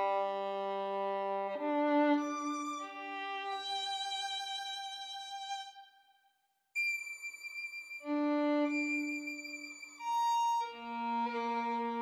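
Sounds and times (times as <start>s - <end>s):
solo violin melody: 0.0s - 5.8s, 8.0s - 12.0s.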